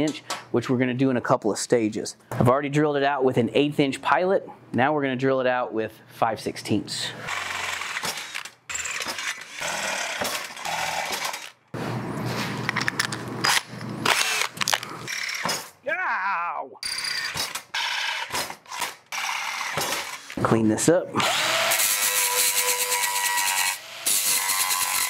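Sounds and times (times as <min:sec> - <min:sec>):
cordless drill boring metal: 0:21.2 - 0:25.0.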